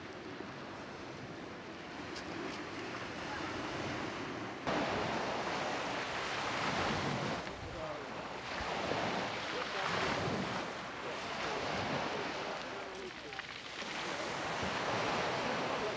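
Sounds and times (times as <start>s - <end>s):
waves breaking on pebble beach: 0.1s - 15.9s.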